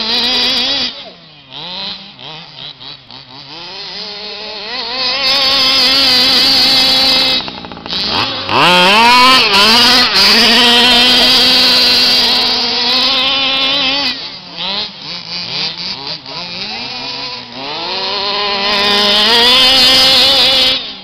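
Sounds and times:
small two-stroke engine revving: 0:00.0 - 0:21.0.

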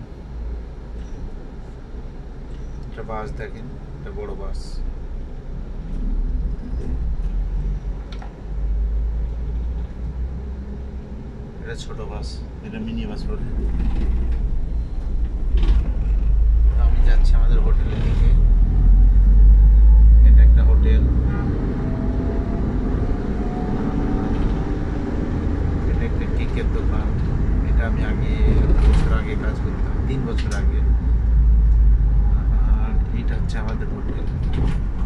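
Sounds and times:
road vehicle rumble: 0:00.0 - 0:35.0.

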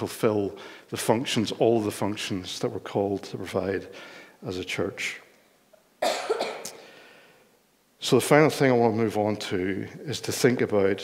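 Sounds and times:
person coughing: 0:06.0 - 0:06.8.

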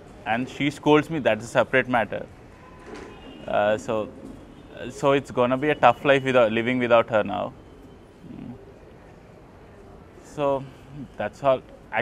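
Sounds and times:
faint background noise: 0:00.0 - 0:12.0
man murmuring: 0:08.2 - 0:08.6, 0:10.9 - 0:11.4.

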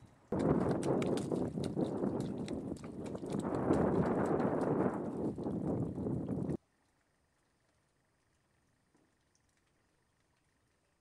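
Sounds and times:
hooves squelching in mud: 0:00.0 - 0:06.6.

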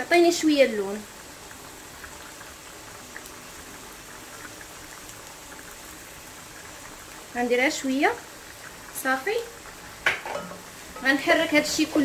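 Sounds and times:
meat sizzling in oil: 0:00.0 - 0:12.0.

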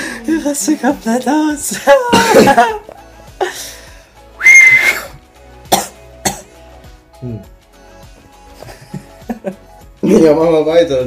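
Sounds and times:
young man laughing: 0:01.9 - 0:02.9, 0:08.7 - 0:09.7.

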